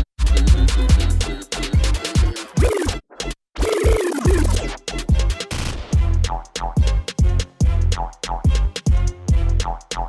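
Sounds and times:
grime instrumental beat and bass: 0.2 - 3.0, 3.6 - 5.0
turntable scratching: 2.2 - 3.0, 3.6 - 4.8.

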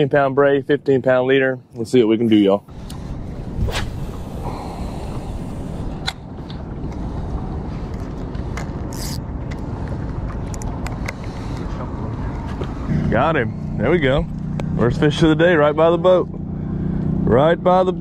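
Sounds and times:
outboard motor running: 12.9 - 18.0.

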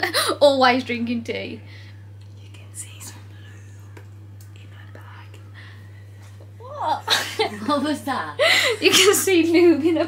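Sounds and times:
steady low hum: 0.0 - 10.0
person whispering: 2.4 - 5.6.

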